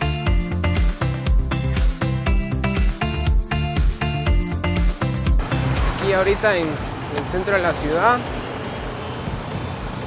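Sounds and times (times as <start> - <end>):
street traffic: 4.0 - 10.0.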